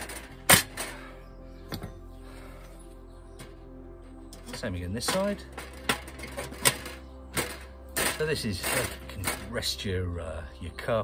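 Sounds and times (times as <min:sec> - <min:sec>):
steel plate clanking: 0:00.0 - 0:01.1, 0:04.3 - 0:09.6
background music: 0:00.0 - 0:11.0.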